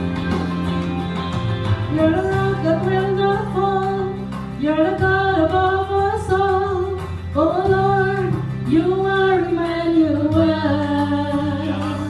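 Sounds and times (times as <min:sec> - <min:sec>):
instrumental accompaniment: 0:00.0 - 0:12.0
woman singing worship song: 0:01.9 - 0:12.0.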